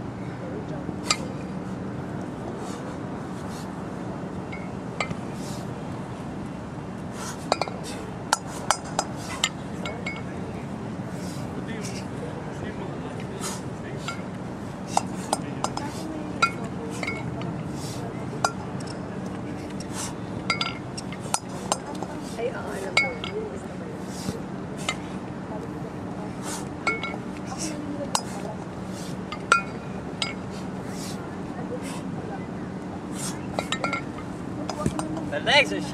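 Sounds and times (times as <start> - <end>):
steady low hum: 0.0 - 35.9
kettlebells clinking together: 7.5 - 10.3, 14.0 - 17.5, 19.8 - 22.0, 26.8 - 28.4, 29.3 - 30.5, 33.5 - 35.3.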